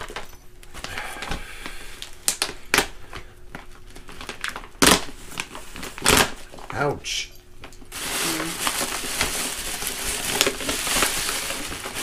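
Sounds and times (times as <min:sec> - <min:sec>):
tissue paper rustling and crinkling: 0:07.9 - 0:12.0.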